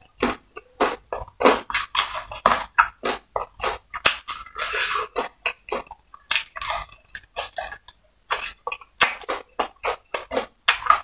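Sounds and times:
chewing fried chicken: 0.0 - 11.0.

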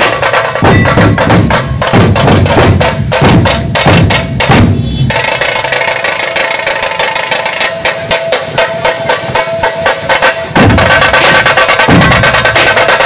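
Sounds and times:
heavy deep drum beats: 0.0 - 13.0
rapid high drum strokes: 0.0 - 13.0.

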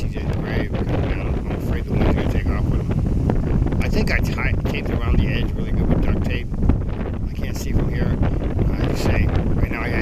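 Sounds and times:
gusty wind buffeting microphone: 0.0 - 10.0.

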